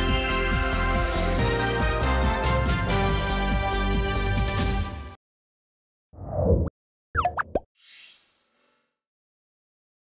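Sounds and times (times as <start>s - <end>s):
rising bloops: 6.2s - 8.1s.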